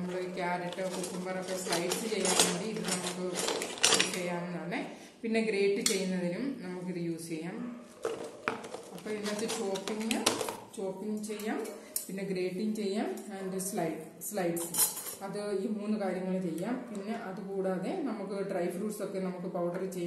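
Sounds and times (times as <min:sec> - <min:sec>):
plastic and metal parts clattering: 0:00.0 - 0:04.2, 0:08.0 - 0:10.6
person talking: 0:00.0 - 0:07.5, 0:09.0 - 0:18.8.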